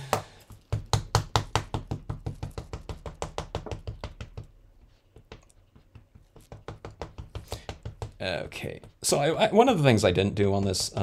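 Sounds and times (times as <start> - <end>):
ink pad tapping on stamp: 0.2 - 4.5, 5.2 - 8.2.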